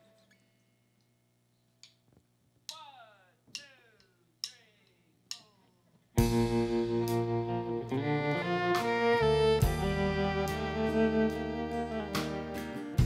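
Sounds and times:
country band playing: 6.2 - 13.0
sliding plucked string notes: 6.2 - 13.0.

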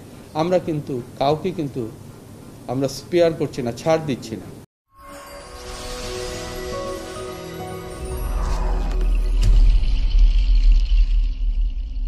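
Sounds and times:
thin high shimmer: 4.9 - 10.2.

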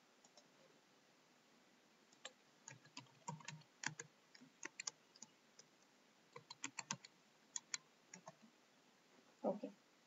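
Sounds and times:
faint keyboard keystrokes: 6.4 - 8.4.

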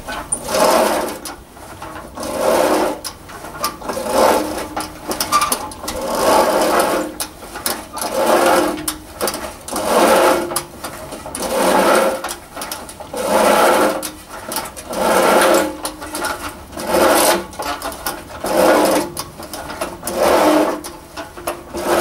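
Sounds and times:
reel lawn mower whirring clatter: 0.0 - 22.0.

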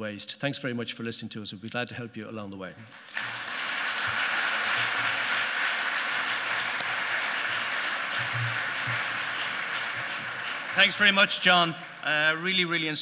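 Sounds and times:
large audience applauding: 2.9 - 12.8.

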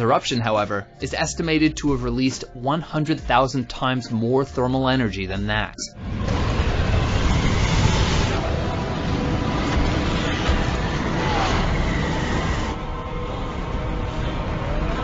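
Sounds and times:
volcanic eruption rumble: 6.0 - 13.1.

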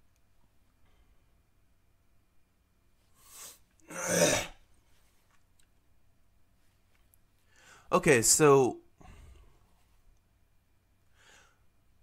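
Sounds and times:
man clearing his throat: 3.9 - 4.6.

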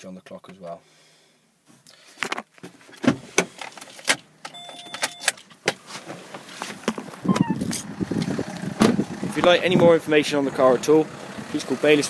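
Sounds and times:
short steady electronic tone: 7.3 - 7.7.

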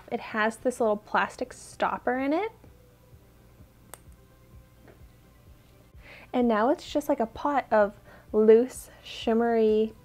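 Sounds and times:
faint music: 0.0 - 10.0.

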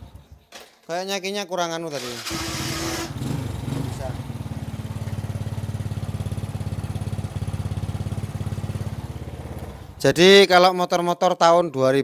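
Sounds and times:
small engine idling: 2.2 - 10.1.

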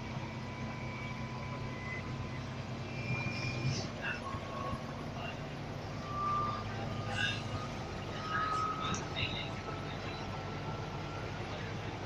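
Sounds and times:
faint high whine: 0.0 - 11.7
bus engine hum: 0.0 - 12.0
road and cabin noise: 0.0 - 12.0.

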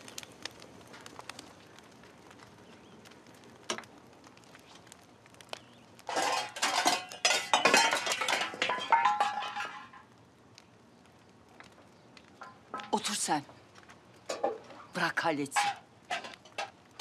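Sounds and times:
metal pots and pans clattering: 6.1 - 10.0, 14.3 - 14.6, 15.5 - 16.8.

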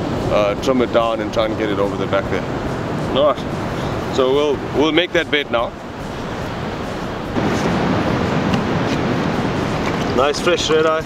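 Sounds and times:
beach surf: 0.0 - 11.0
wind: 0.0 - 11.0.

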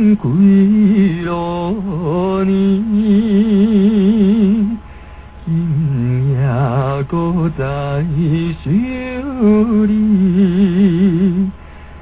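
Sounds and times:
man singing a slow ballad: 0.0 - 11.6
man breathing in: 4.8 - 5.4, 11.6 - 12.0.

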